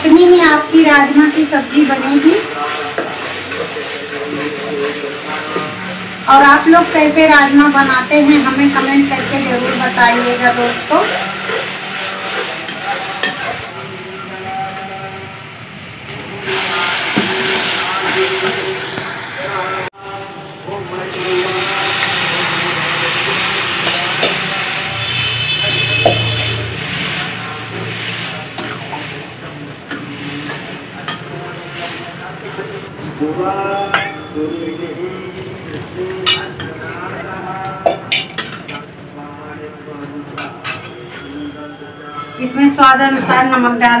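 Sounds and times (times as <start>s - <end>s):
food sizzling in pan: 0.0s - 32.9s
metal spoon scraping pan: 8.3s - 13.7s
water poured into hot pan: 16.4s - 32.8s.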